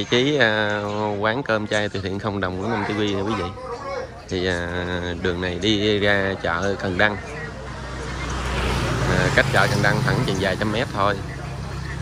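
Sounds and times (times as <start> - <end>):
motor scooter engine: 7.7 - 12.0.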